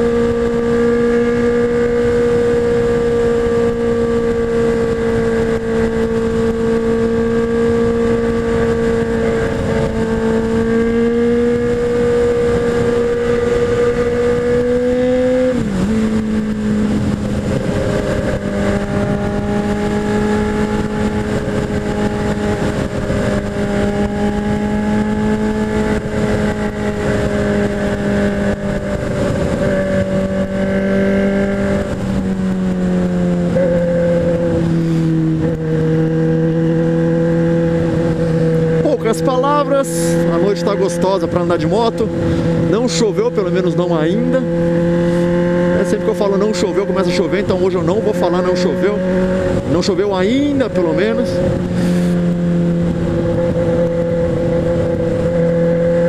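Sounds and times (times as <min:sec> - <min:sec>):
motorcycle engine cruising: 0:00.0 - 0:56.0
wind rushing over helmet: 0:01.3 - 0:39.0, 0:42.0 - 0:42.8.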